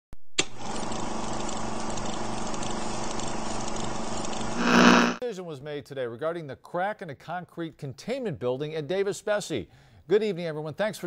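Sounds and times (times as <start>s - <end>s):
low hum: 4.5s - 5.2s
steady buzzing: 4.5s - 5.2s.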